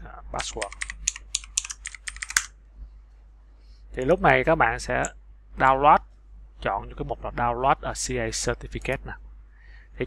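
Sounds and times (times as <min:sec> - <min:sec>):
computer keyboard keystrokes: 0:00.4 - 0:02.5.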